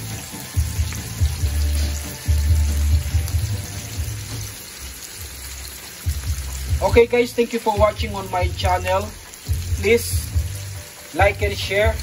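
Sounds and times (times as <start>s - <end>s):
steaks sizzling in butter: 0.0s - 12.0s.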